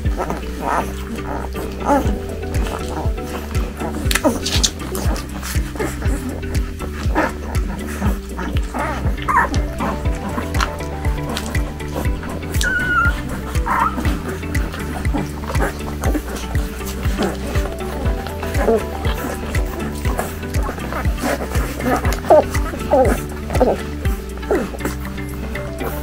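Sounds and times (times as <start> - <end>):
background music with steady beat: 0.0 - 26.0
puppies squeaking and whimpering: 0.0 - 26.0.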